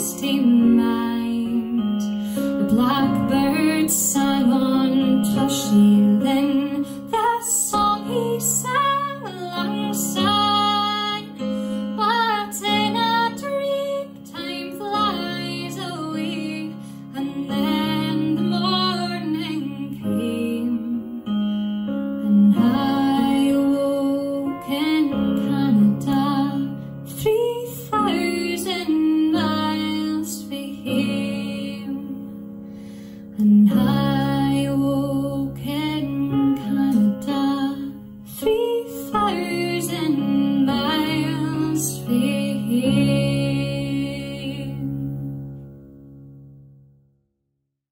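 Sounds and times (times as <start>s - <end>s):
woman singing a folk ballad: 0.0s - 21.4s, 22.2s - 45.4s.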